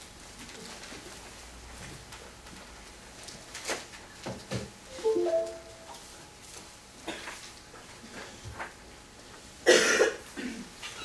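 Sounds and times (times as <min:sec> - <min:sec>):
person coughing: 0:09.7 - 0:10.6.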